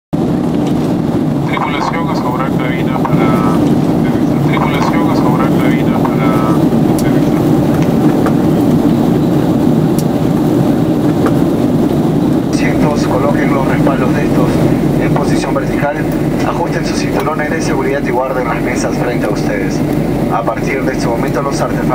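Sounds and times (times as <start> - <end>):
airliner cabin noise: 0.1 - 21.9
faint voices: 1.4 - 8.8, 12.5 - 21.9.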